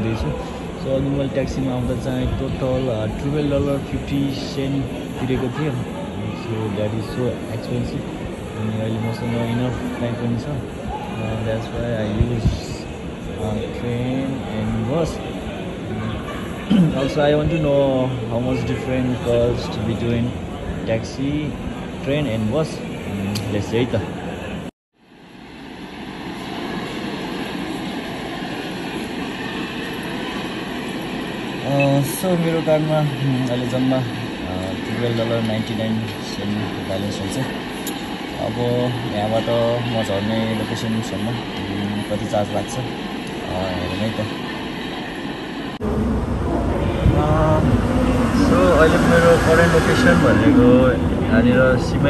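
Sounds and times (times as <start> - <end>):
people talking: 0.0 - 24.2, 31.6 - 44.4, 45.8 - 52.0
people's voices: 0.0 - 24.7, 31.5 - 52.0
metro train carriage rumble: 0.0 - 52.0
station concourse background noise: 0.0 - 52.0.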